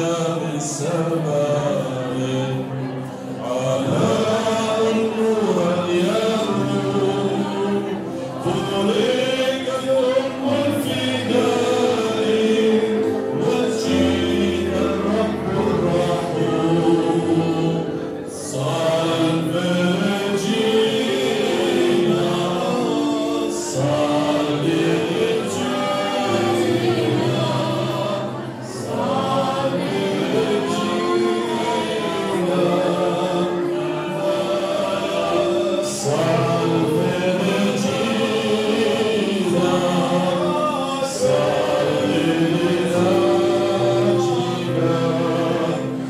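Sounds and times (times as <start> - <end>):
voices singing a hymn: 0.0 - 46.0.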